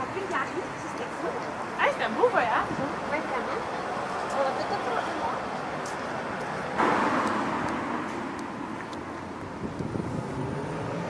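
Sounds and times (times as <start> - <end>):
car passing: 0.0 - 11.0
city street traffic: 0.0 - 11.0.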